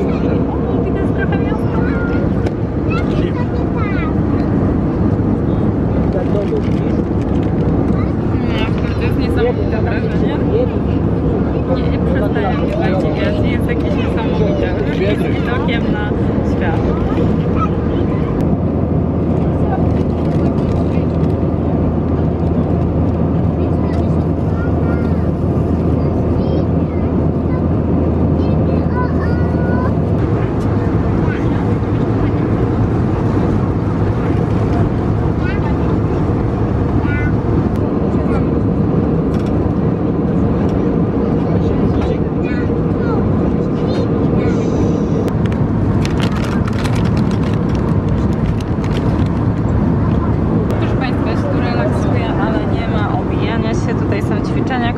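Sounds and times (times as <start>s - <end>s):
airliner cabin engine noise: 0.0s - 54.9s
faint passenger voices: 0.0s - 54.9s.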